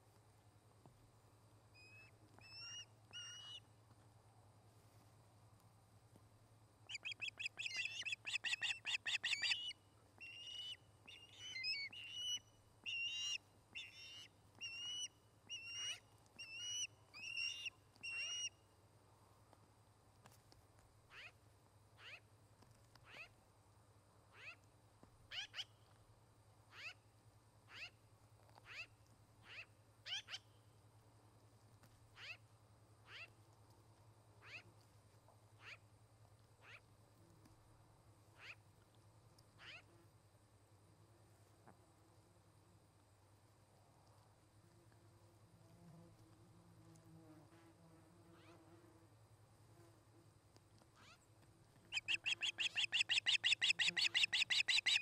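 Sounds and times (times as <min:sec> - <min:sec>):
ospreys calling: 0:51.9 - 0:55.0.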